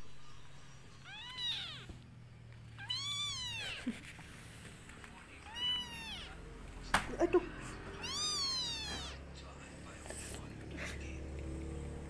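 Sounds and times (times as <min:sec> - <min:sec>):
kitten meowing: 0:00.1 - 0:02.0, 0:02.6 - 0:04.1, 0:05.4 - 0:06.4, 0:07.9 - 0:09.3.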